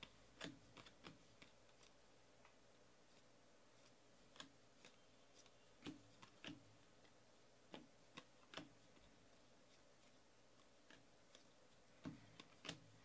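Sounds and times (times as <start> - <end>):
cards clicking and sliding: 0.0 - 13.0.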